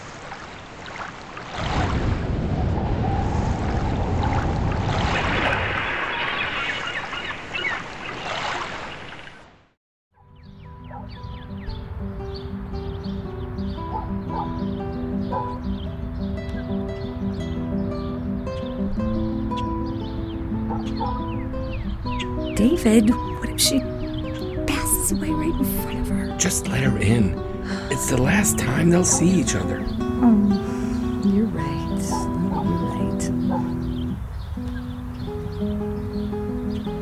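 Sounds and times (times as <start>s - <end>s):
rushing water: 0.0s - 9.8s, 24.6s - 37.0s
instrumental film music: 10.2s - 37.0s.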